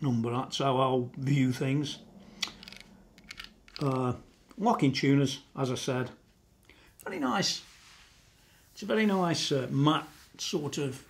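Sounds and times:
person speaking: 0:00.0 - 0:06.3, 0:07.0 - 0:07.8, 0:08.7 - 0:11.0.

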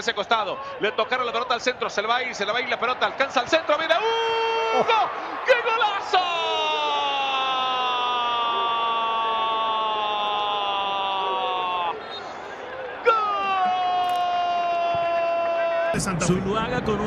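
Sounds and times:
crowd cheering: 0:00.0 - 0:17.0.

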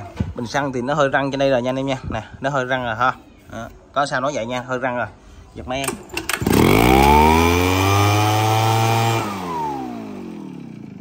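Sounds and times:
leaf blower engine revving: 0:06.3 - 0:11.0.

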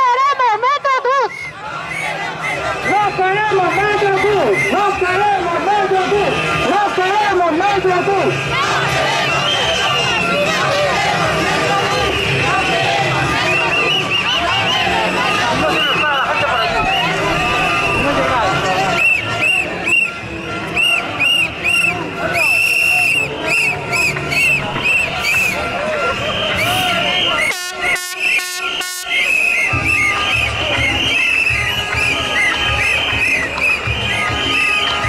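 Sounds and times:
crowd chatter: 0:00.0 - 0:35.0
shrill whistle blasts: 0:01.3 - 0:05.0, 0:09.2 - 0:10.4, 0:13.4 - 0:15.0, 0:15.6 - 0:35.0
horn blasts: 0:02.4 - 0:10.6, 0:11.2 - 0:35.0.

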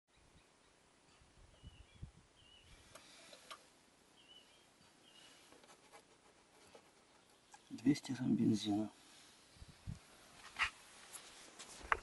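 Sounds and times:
faint bird chirps: 0:00.1 - 0:05.5.

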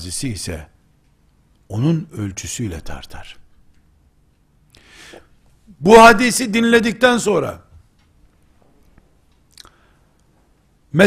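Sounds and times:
soft mouth clicks: 0:08.9 - 0:10.3.

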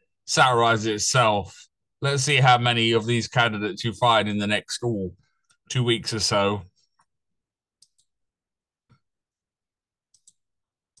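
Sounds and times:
computer mouse clicks: 0:07.8 - 0:08.2, 0:10.1 - 0:10.4.

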